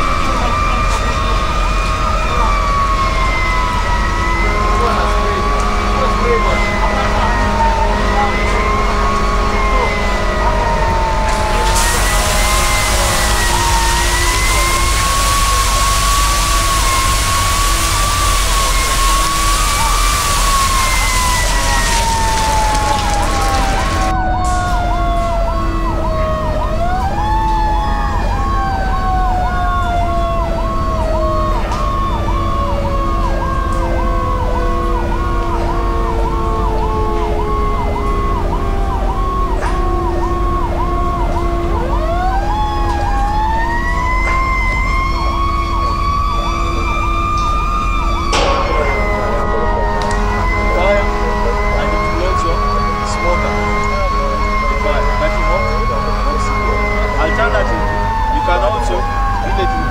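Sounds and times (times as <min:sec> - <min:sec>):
pulsing alarm tone: 0:00.0 - 0:59.9
wavering siren wail: 0:00.0 - 0:59.9
loud steady hiss: 0:11.2 - 0:24.1.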